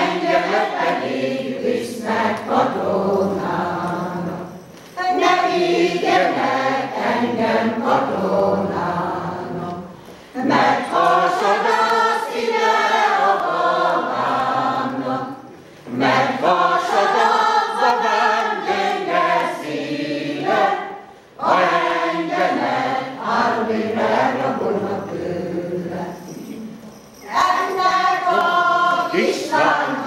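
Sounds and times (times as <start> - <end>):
women's choir singing: 0.0 - 30.0
breaths: 10.0 - 10.4, 21.0 - 21.4.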